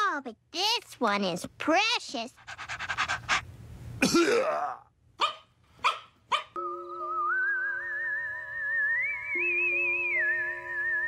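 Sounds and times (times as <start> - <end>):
cartoon puppy panting: 2.2 - 3.5
soft music with whistle-like lead: 6.6 - 11.0.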